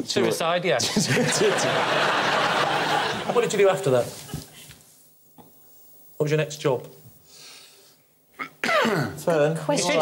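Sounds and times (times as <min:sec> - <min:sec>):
audience laughter: 0:01.0 - 0:03.6.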